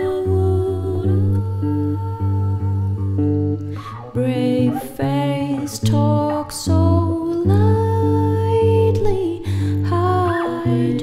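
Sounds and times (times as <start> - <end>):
electric guitar chords: 0.0 - 11.0
soft layered vocals: 0.0 - 11.0.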